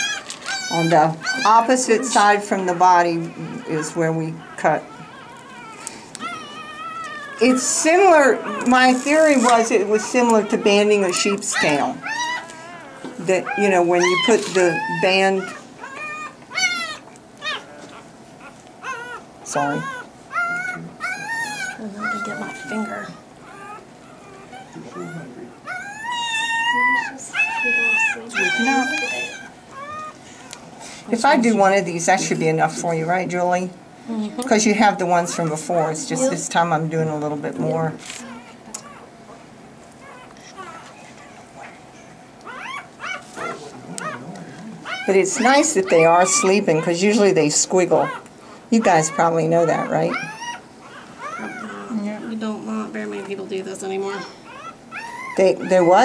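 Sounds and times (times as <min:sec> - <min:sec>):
puppy crying: 0:00.0 - 0:33.6, 0:34.2 - 0:56.0.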